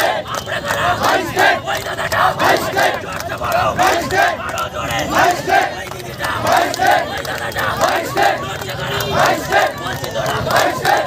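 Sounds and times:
crowd chanting: 0.0 - 11.0
hand-clapping in time: 0.0 - 11.0.

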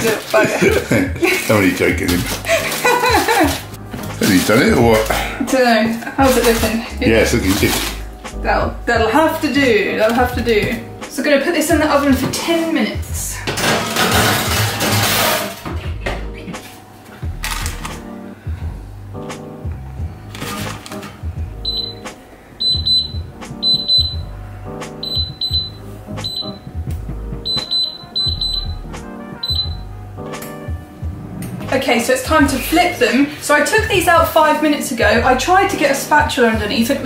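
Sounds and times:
background music: 0.0 - 37.0
short high beeps: 22.6 - 24.2, 25.0 - 26.6, 27.5 - 28.8, 29.4 - 29.8.

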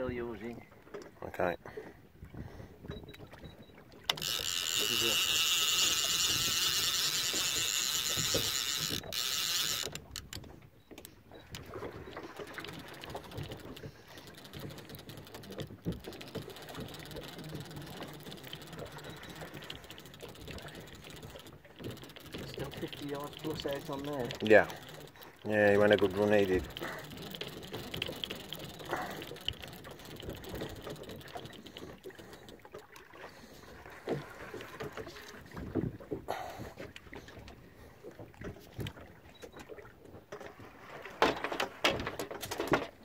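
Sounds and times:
reel and rod clicks: 2.8 - 40.6
fishing reel drag buzzing: 4.1 - 10.4, 12.2 - 32.6.

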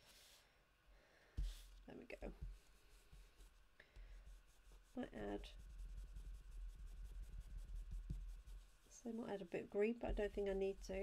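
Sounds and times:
brush rubbing on cardstock: 1.4 - 11.0.

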